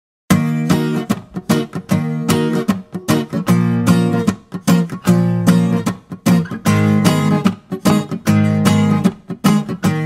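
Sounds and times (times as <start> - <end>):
acoustic guitar strumming chords: 0.3 - 10.0.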